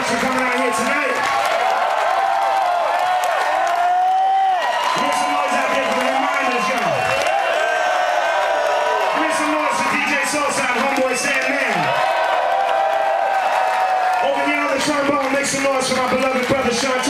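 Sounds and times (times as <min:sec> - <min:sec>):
crowd cheering and whooping: 0:00.0 - 0:17.0.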